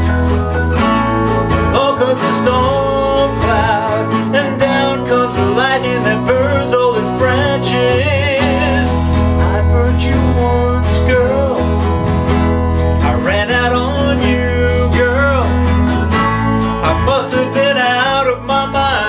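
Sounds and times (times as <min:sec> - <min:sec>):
man singing: 0:00.0 - 0:00.6, 0:01.7 - 0:19.0
electronic keyboard chords: 0:00.0 - 0:19.0
strummed acoustic guitar: 0:00.0 - 0:19.0.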